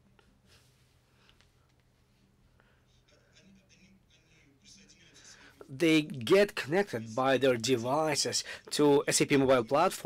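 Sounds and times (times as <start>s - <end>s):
faint scratchy sounds: 0.0s - 10.0s.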